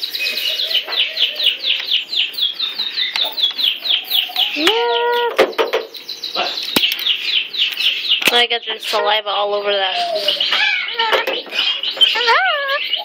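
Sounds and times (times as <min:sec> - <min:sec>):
birds chirping: 0:00.0 - 0:13.0
sharp clicks: 0:05.4 - 0:08.5.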